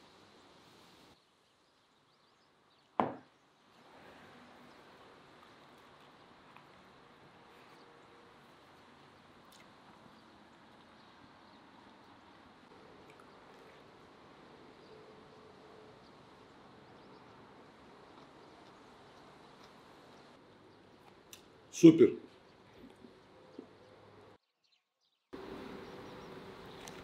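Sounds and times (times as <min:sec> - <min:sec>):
faint outdoor background: 0:00.0 - 0:27.0
cup knocking on wooden table: 0:03.0 - 0:03.3.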